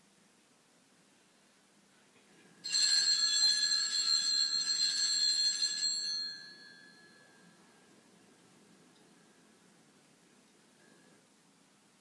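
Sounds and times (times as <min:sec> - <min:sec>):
altar bells jangling: 0:02.6 - 0:07.5.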